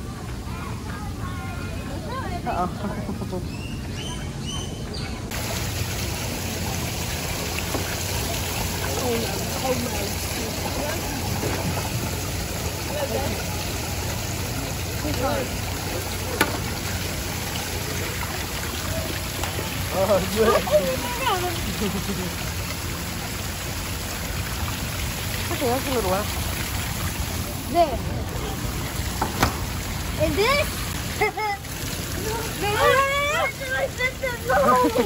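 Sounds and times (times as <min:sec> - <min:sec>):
faint children's voices: 0:00.0 - 0:05.3
water running and splashing: 0:05.3 - 0:35.0.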